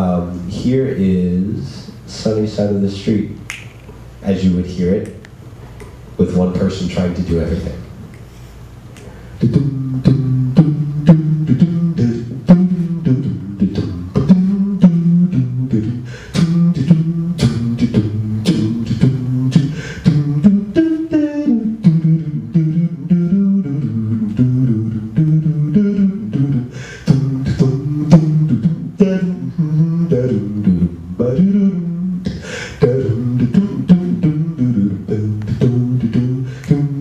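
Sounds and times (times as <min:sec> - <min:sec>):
man singing wordless line: 0:00.0 - 0:03.5, 0:09.4 - 0:37.0
man beatboxing: 0:04.4 - 0:05.2, 0:08.9 - 0:37.0.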